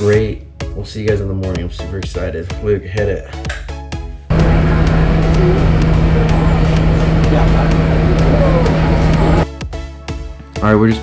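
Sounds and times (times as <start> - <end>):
bus engine droning: 4.3 - 9.4.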